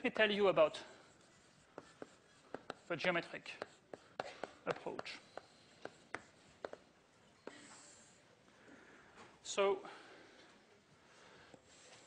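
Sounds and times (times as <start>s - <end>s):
chalk tapping and scratching: 0.0s - 8.1s.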